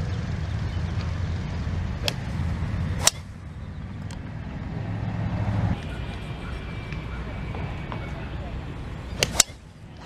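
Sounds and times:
golf ball struck off tee: 3.0s - 3.4s, 9.2s - 9.6s.

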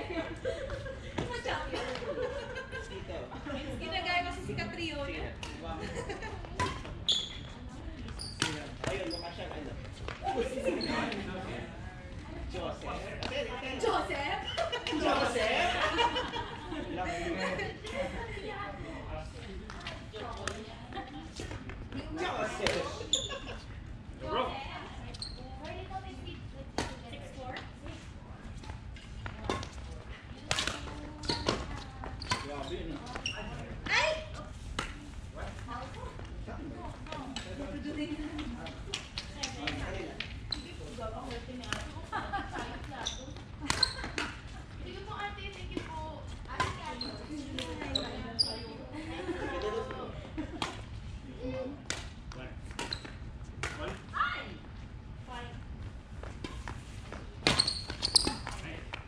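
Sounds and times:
rackets striking shuttlecock: 30.5s - 32.5s.

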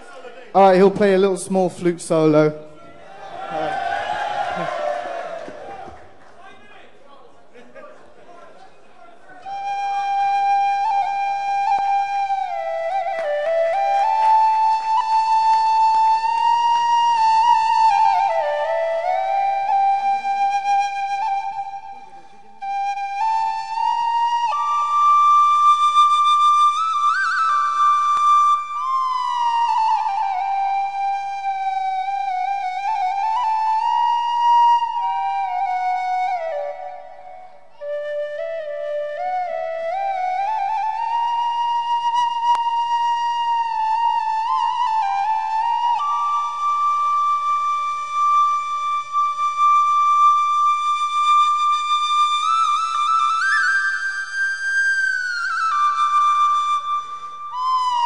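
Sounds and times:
small flute slow melody: 9.4s - 58.0s.

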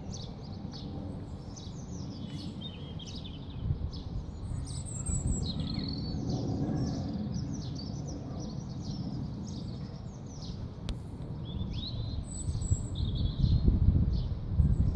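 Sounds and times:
songbirds chirping: 0.0s - 14.9s.

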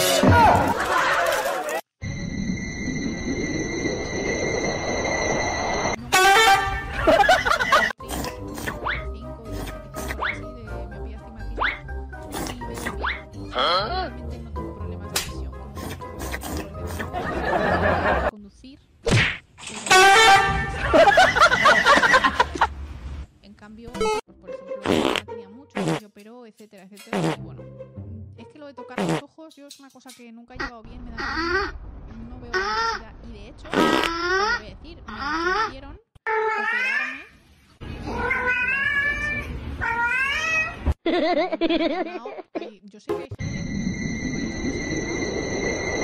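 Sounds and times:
loud horn blast: 6.1s - 7.0s, 19.9s - 20.8s
light background music: 7.2s - 18.3s, 23.5s - 30.6s.

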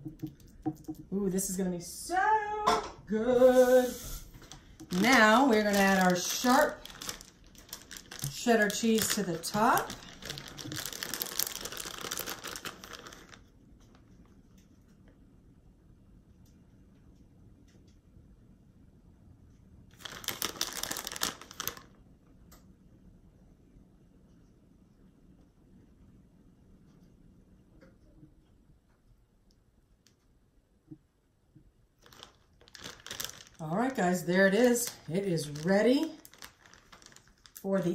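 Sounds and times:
plastic bag crinkling: 3.4s - 14.1s, 19.9s - 22.0s, 32.0s - 37.9s.

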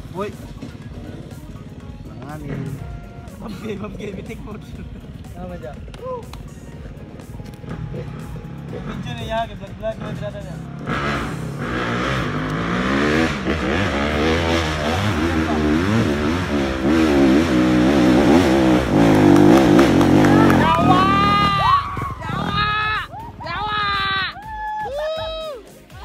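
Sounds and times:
dirt bike engine revving: 0.0s - 5.9s, 7.2s - 24.2s
raised voices: 20.0s - 26.0s.

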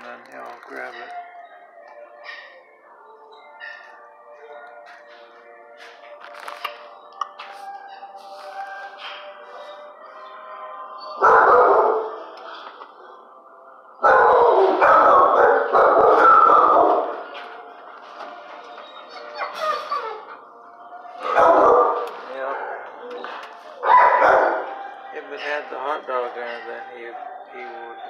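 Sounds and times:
dogs barking in a kennel: 6.8s - 25.6s.

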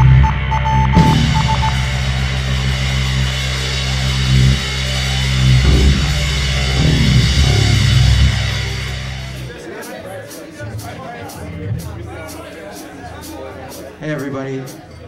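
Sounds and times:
high stuttering tone: 0.0s - 9.6s
rock band distorted guitar: 0.0s - 9.6s.

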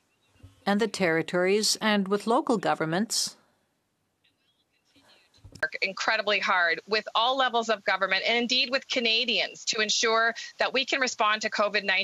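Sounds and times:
woman speaking over headset: 0.7s - 3.3s, 5.6s - 12.0s.

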